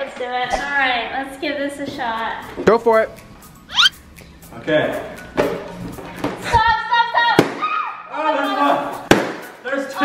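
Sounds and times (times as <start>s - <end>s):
high squeals: 3.6s - 4.0s
balloons popping: 3.7s - 3.9s.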